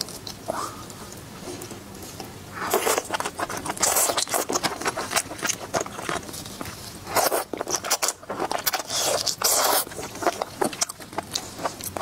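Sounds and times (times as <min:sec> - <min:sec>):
chewing and crunching: 0:00.0 - 0:12.0.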